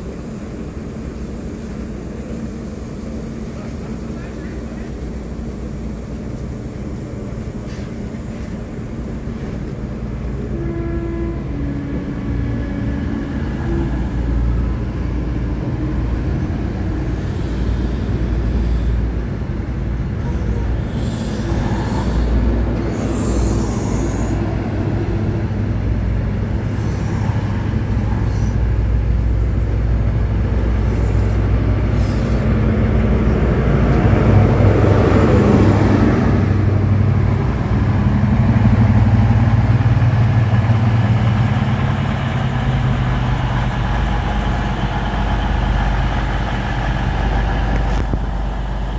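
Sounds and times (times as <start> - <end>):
diesel engine drone: 0.0 - 48.9
train coaches rolling on rails: 0.0 - 48.9.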